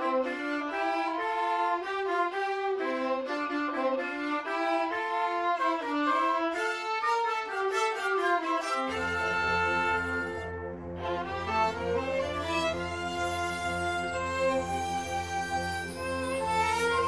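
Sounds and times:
violins playing short bowed notes: 0:00.0 - 0:17.0.

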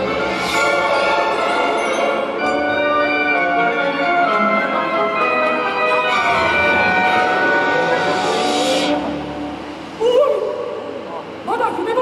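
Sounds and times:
orchestral music with strings and brass: 0:00.0 - 0:11.4.

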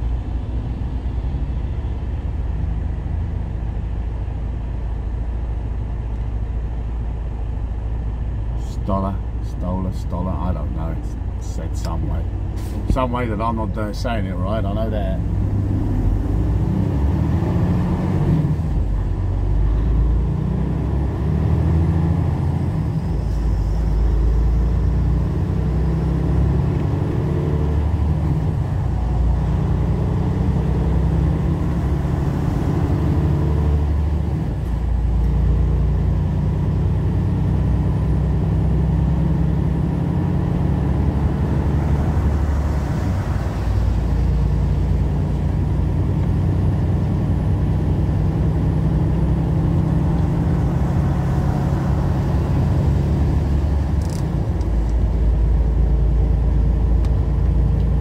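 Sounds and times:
truck engine and road noise: 0:00.0 - 0:58.0.

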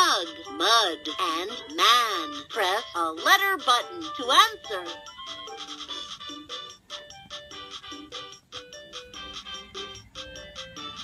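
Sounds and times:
electronic toy tune: 0:00.0 - 0:11.0.

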